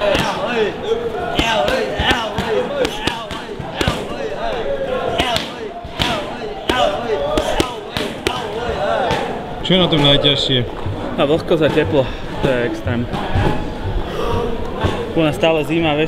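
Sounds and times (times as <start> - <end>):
voices: 0.0 - 16.0.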